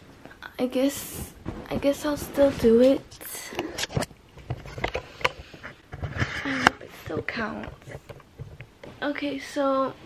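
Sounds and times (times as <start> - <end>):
camera handling knocks and rustles: 3.8 - 8.8.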